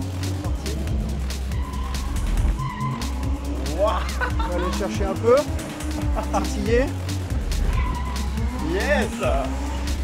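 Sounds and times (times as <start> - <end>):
music with steady beat: 0.0 - 10.0
car tyres squealing: 1.3 - 6.0, 7.3 - 10.0.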